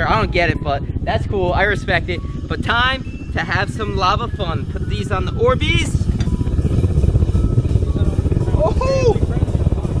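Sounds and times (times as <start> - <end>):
furnace burner rumbling: 0.0 - 10.0.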